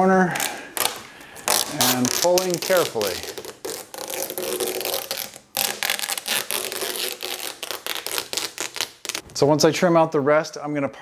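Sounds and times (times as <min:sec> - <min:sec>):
vinyl wrap peeling crackle: 0:00.4 - 0:09.4.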